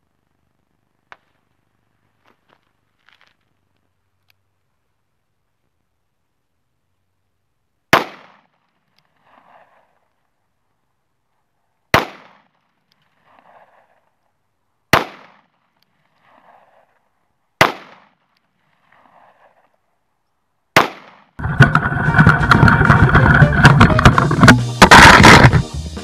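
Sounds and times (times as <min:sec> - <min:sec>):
loud music: 0:22.0 - 0:26.0.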